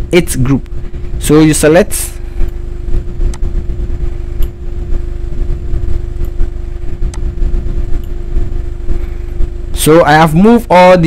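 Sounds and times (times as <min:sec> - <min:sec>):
machinery rumble and hum: 0:00.0 - 0:11.0.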